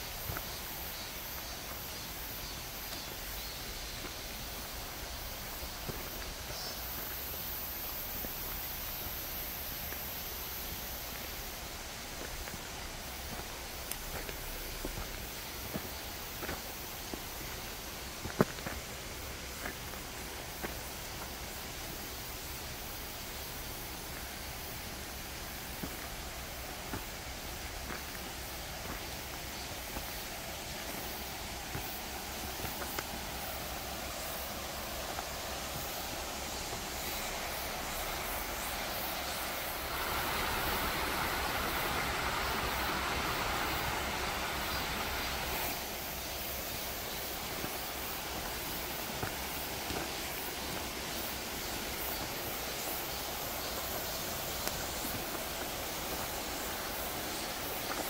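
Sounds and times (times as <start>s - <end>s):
footsteps on trail: 0.0s - 58.0s
stream rushing: 0.0s - 58.0s.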